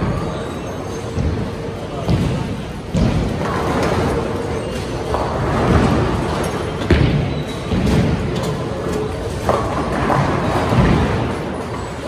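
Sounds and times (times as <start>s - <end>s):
bowling alley din: 1.0s - 12.0s.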